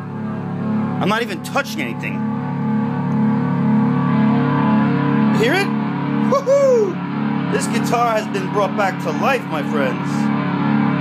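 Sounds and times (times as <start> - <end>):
amplified electric guitar drone and hum: 0.0 - 11.0.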